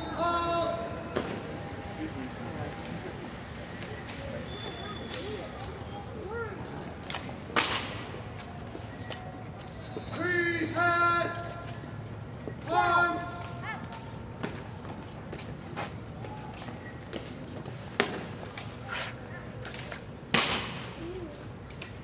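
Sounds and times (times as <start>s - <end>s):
drill commands shouted: 10.2s - 11.5s, 12.6s - 13.3s.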